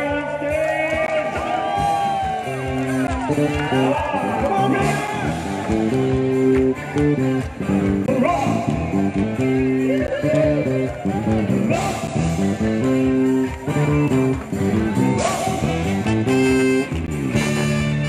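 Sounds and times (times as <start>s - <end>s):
live band music with guitar: 0.0s - 18.0s.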